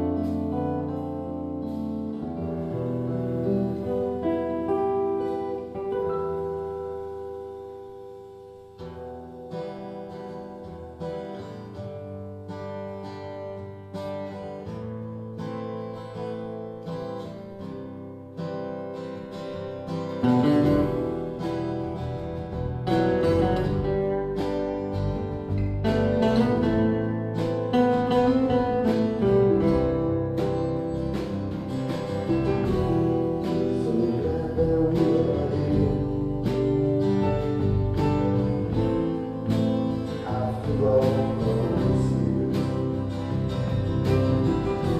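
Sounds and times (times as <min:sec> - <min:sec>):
acoustic guitars strummed and picked: 0:00.0 - 0:44.9
bass: 0:00.0 - 0:44.9.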